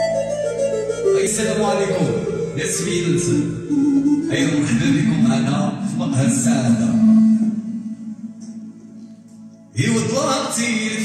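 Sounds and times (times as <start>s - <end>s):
electronic keyboard chord: 0.0s - 10.6s
person singing: 4.2s - 8.8s.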